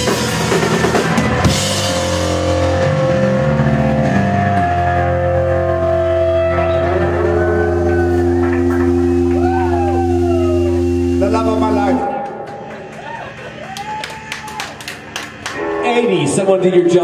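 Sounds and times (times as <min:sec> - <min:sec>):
whining guitar feedback: 0:00.0 - 0:14.8, 0:15.4 - 0:17.0
drums: 0:00.0 - 0:15.8
electric guitars and bass chord: 0:00.0 - 0:17.0.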